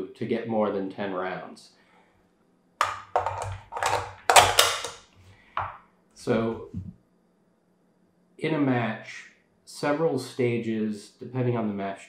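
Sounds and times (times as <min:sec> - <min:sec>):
metal rifle magazine clacking: 0:02.8 - 0:05.0.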